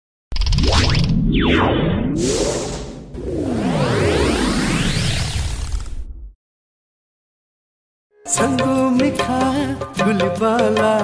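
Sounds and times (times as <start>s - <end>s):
synthesized whooshes: 0.5s - 6.4s
sweeping pitch glides: 1.4s - 6.0s.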